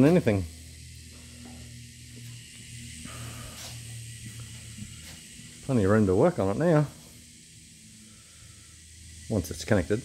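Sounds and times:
faint hiss: 0.0 - 10.0
low steady hum: 0.0 - 10.0.

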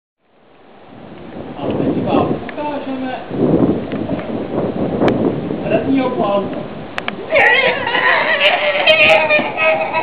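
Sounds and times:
rumbling background noise: 0.2 - 10.0.

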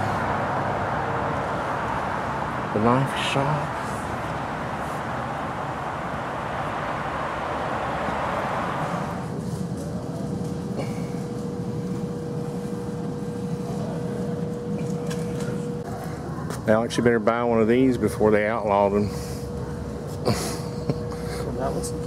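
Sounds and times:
outdoor noise: 0.0 - 22.0
steady room hum: 0.0 - 22.0.

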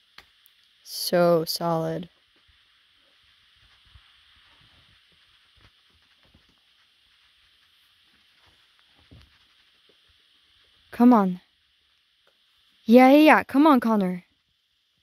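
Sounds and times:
faint background hiss: 0.0 - 15.0.

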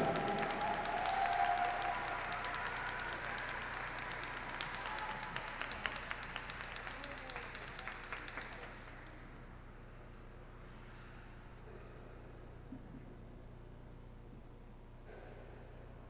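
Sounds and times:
audience applause: 0.0 - 9.2.

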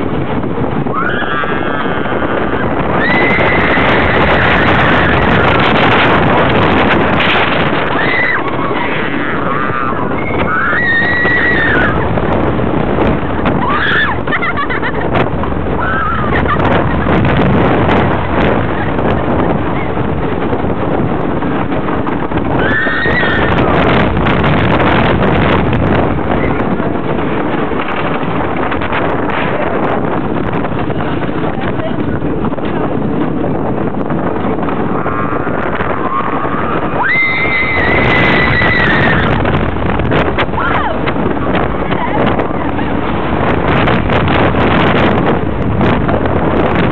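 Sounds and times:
roller coaster rattling on track: 0.0 - 46.9
wind on microphone: 0.0 - 46.9
rider screaming: 0.9 - 5.7, 7.7 - 12.2, 13.4 - 14.7, 15.7 - 16.9, 22.5 - 24.0, 34.8 - 39.6, 40.4 - 42.5.

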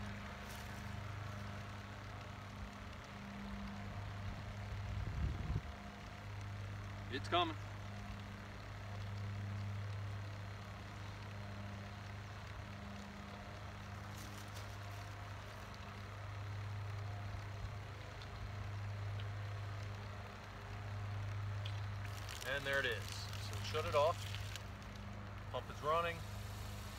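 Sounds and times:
diaphragm pump humming: 0.0 - 26.9.

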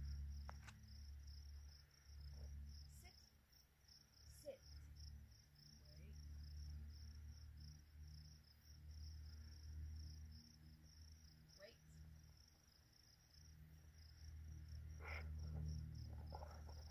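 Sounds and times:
insects chirring: 0.0 - 16.9.

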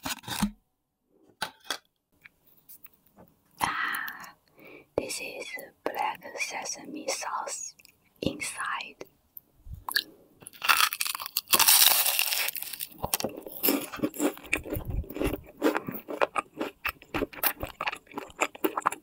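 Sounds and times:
person speaking softly: 5.0 - 9.1
close chewing: 9.9 - 19.0
pastry crust crunch: 9.9 - 19.0.

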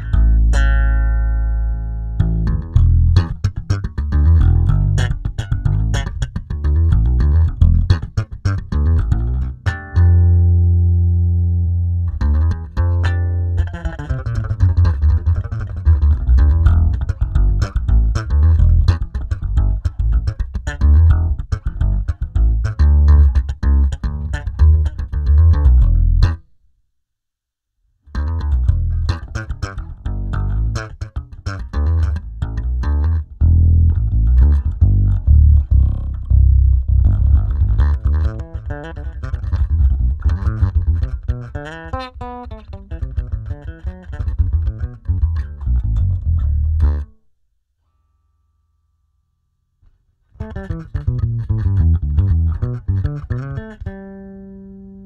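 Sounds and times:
plucked electric bass line: 0.0 - 26.4, 28.1 - 47.2, 50.4 - 55.0.

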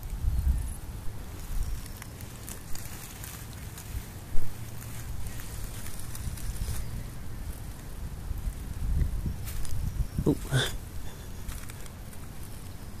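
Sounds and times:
wind buffeting microphone: 0.0 - 3.0, 4.0 - 13.0
rustling of dry grass: 0.0 - 13.0.

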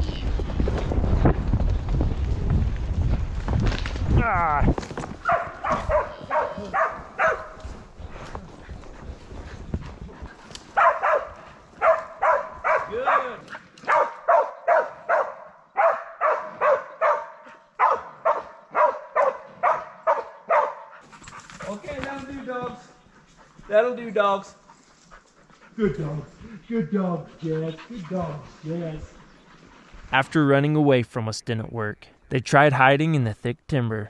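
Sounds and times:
dogs barking: 5.2 - 7.8, 10.7 - 29.7.

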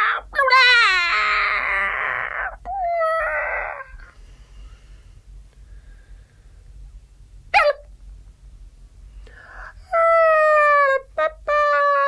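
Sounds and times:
breathy whimpering voice: 1.1 - 4.1.

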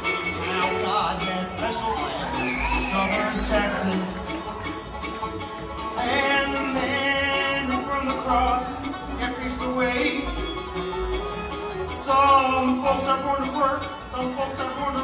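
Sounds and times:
bluegrass band playing: 0.0 - 15.0
person singing: 0.3 - 4.5.

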